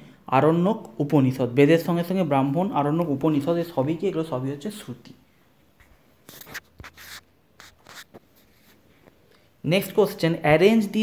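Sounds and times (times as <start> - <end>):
taps and rubs on touchscreen: 5.8 - 9.2.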